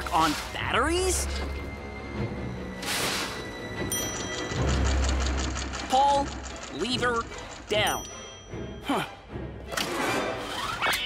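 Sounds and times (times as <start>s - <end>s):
cartoon background music: 0.0s - 11.0s
rapid mechanical clatter: 4.2s - 7.8s.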